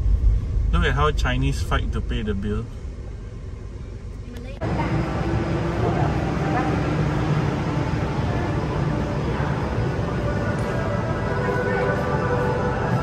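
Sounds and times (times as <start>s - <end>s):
even background noise: 0.0s - 13.0s.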